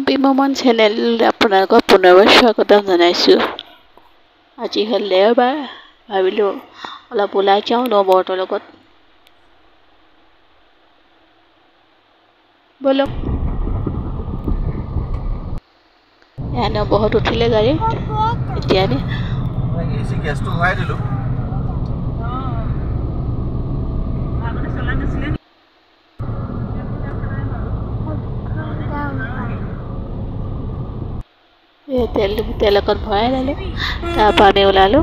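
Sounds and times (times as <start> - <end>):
car engine rumble: 13.1 - 15.6, 16.4 - 25.4, 26.2 - 31.2
road noise: 13.1 - 15.6, 16.4 - 25.4, 26.2 - 31.3, 32.0 - 35.0
person speaking: 32.0 - 35.0.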